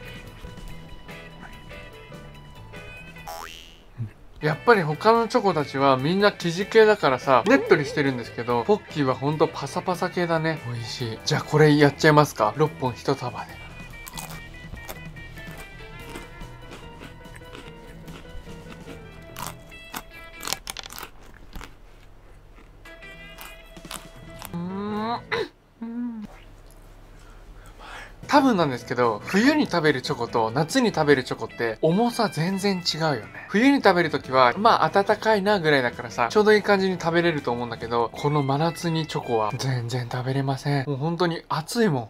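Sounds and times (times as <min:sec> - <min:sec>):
quiet background music: 0:00.0 - 0:42.0
crunchy bites and chewing: 0:13.9 - 0:24.6.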